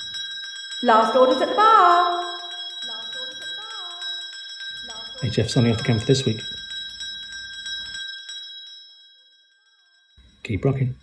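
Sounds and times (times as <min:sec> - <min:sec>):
bell rung rapidly: 0:00.0 - 0:11.0.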